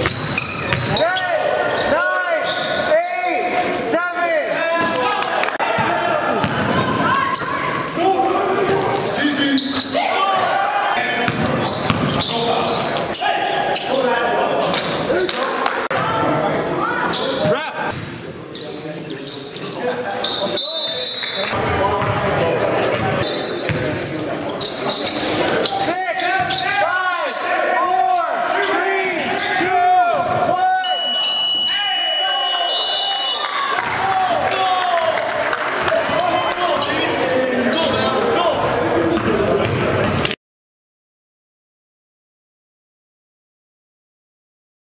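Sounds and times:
basketball dribbling: 0.0 - 0.9
sneakers squeaking: 0.0 - 3.4, 6.4 - 10.4, 11.2 - 15.5, 17.0 - 27.6, 28.4 - 29.7, 36.1 - 40.3.

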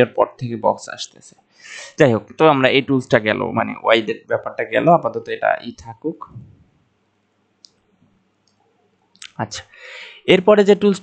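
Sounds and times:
person speaking: 0.0 - 6.6, 9.2 - 11.0.

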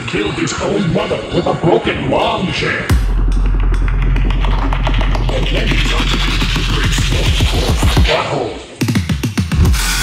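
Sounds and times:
dubstep music: 0.2 - 10.0.

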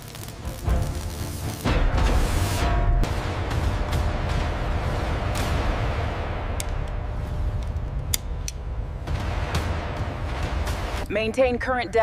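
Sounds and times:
heavy low rumble: 2.0 - 12.0.

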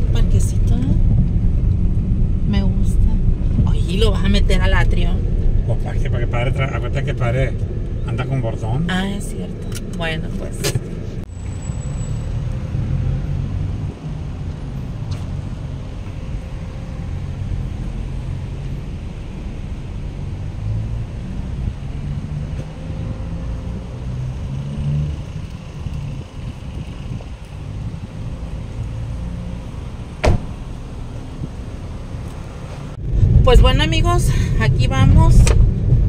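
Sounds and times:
car engine rumble from inside: 0.0 - 36.0
sharp knock: 30.2 - 30.6.

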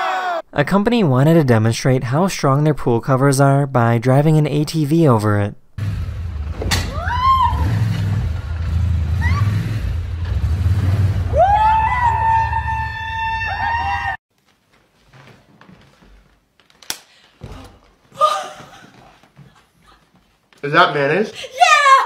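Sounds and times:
quad bike engine running: 5.8 - 12.7
person screaming in cheer: 6.9 - 7.8, 11.3 - 14.2
person shouting: 21.5 - 22.0.

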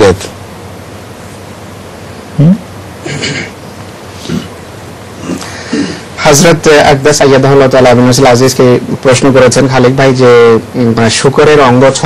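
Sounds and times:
recording hiss: 0.0 - 12.0
man saying hmm: 2.4 - 3.5.

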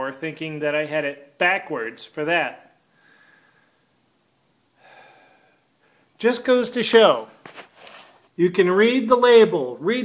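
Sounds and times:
man exhaling close to microphone: 4.8 - 6.1.

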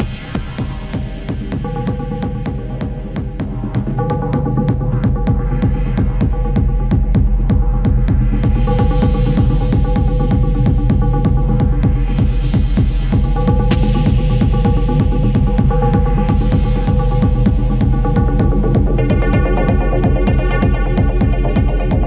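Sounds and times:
deep pulsing bass drone: 0.0 - 22.0
fast clicking beat: 1.0 - 22.0.

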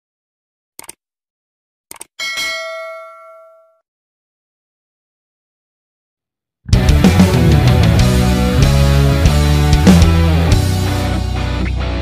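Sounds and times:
bell ding: 2.2 - 3.8.

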